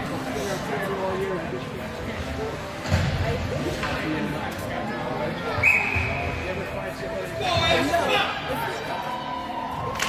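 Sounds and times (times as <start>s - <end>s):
spectators talking: 0.0s - 10.0s.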